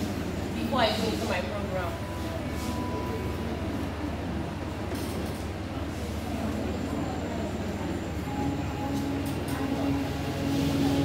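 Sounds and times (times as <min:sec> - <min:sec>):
faint background voices: 0:00.0 - 0:11.0
hall room hum and rumble: 0:00.0 - 0:11.0.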